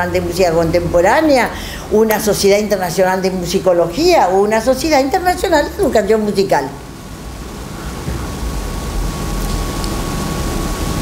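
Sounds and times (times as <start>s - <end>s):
steady background hiss: 0.0s - 11.0s
low rumble: 7.3s - 10.9s.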